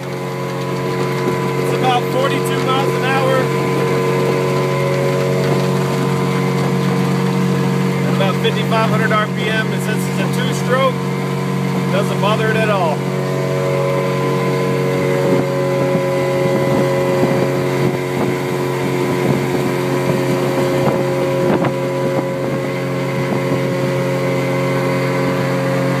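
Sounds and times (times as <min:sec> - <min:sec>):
outboard motor running: 0:00.0 - 0:26.0
wind on microphone: 0:15.0 - 0:24.1.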